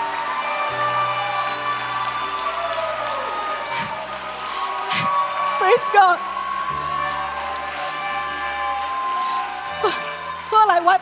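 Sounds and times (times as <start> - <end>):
congregation cheering and applauding: 0.0 - 11.0.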